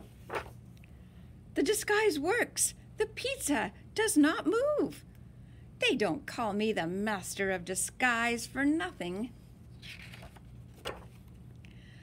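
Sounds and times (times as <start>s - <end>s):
book page turning: 0.0s - 0.6s, 9.8s - 11.4s
low room hum: 0.0s - 12.0s.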